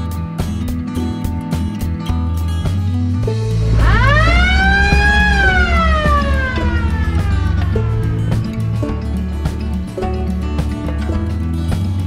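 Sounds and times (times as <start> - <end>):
background music: 0.0 - 12.0
police siren wailing: 3.5 - 9.1.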